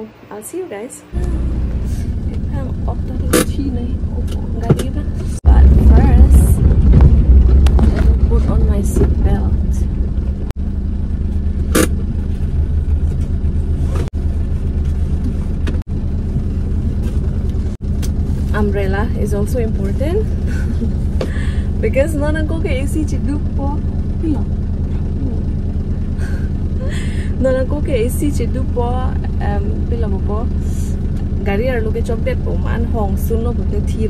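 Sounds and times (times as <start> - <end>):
woman's voice: 0.0 - 6.7, 7.8 - 9.9, 18.5 - 25.6, 26.2 - 34.0
car engine rumble from cabin: 1.0 - 34.0.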